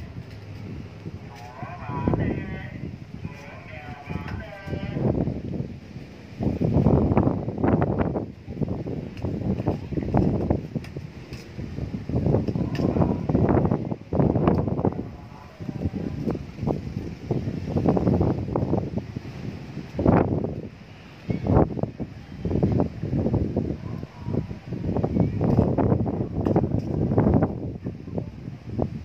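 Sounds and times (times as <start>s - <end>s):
gusty wind buffeting microphone: 0.0s - 29.0s.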